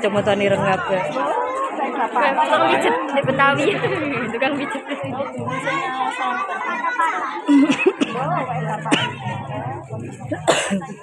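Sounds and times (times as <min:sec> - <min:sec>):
children chattering: 0:00.0 - 0:11.0
person coughing: 0:08.9 - 0:09.2, 0:10.3 - 0:11.0.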